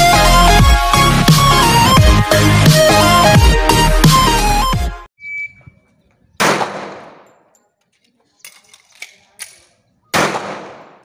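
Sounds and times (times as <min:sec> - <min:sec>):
short electronic beep: 0:05.2 - 0:05.9
pistol shot with echo: 0:06.4 - 0:07.5, 0:10.1 - 0:11.0.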